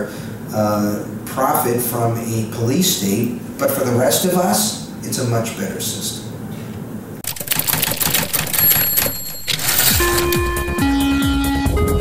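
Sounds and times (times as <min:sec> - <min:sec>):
typewriter keystrokes: 0:07.2 - 0:10.5.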